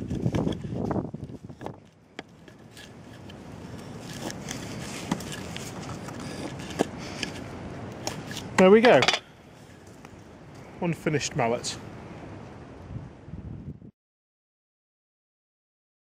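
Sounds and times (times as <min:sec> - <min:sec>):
faint steady rustle: 0:00.0 - 0:10.8
draw knife shaving wood: 0:01.5 - 0:08.6.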